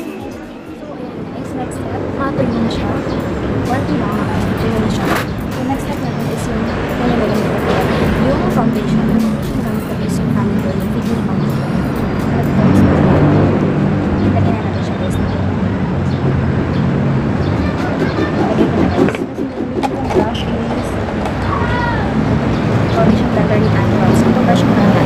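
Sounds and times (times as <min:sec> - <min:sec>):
woman talking: 0:00.0 - 0:15.5, 0:18.7 - 0:22.2, 0:22.8 - 0:25.0
road traffic rumble: 0:00.0 - 0:25.0.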